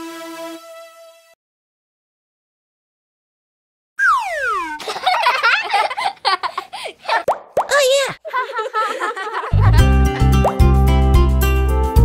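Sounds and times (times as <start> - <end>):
cartoon popping sound effects: 4.0 - 5.0, 7.2 - 7.8
cartoon toddler voices babbling: 7.7 - 8.2.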